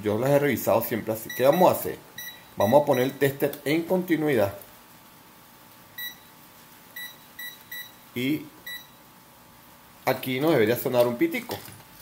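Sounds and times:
multimeter short high beeps: 0:01.3 - 0:03.2, 0:06.0 - 0:06.3, 0:07.0 - 0:08.0, 0:08.7 - 0:09.0.

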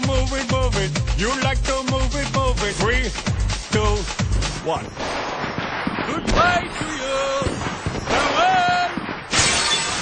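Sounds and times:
shattering crash sound effect: 0:05.0 - 0:10.0.

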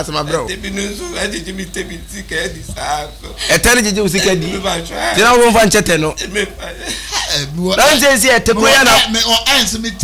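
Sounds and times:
man talking: 0:00.0 - 0:10.0
man chuckling and laughing: 0:06.2 - 0:07.5.

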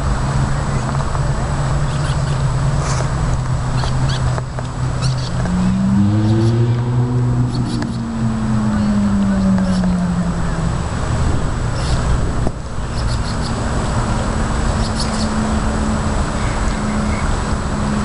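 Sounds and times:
traffic noise: 0:00.0 - 0:18.0
vehicle engine drone: 0:00.0 - 0:18.0.

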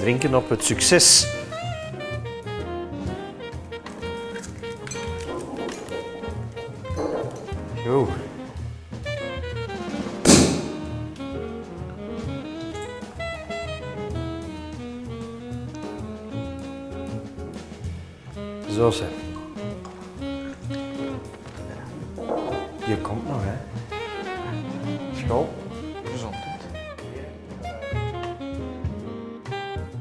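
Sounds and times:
jazz background music: 0:00.0 - 0:30.0
cork popping from bottle: 0:03.8 - 0:07.6, 0:10.2 - 0:10.9, 0:19.2 - 0:23.0.

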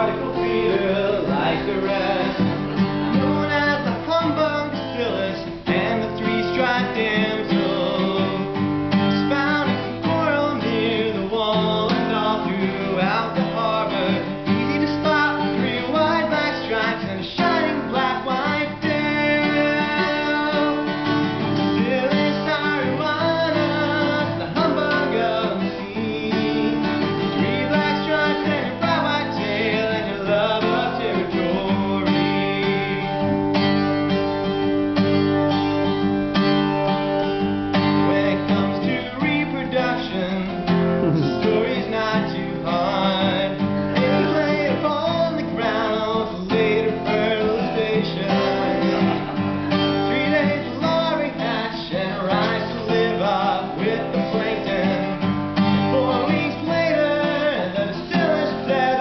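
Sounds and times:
man singing: 0:00.0 - 0:33.8, 0:37.7 - 0:59.0
acoustic guitar strummed: 0:00.0 - 0:59.0.

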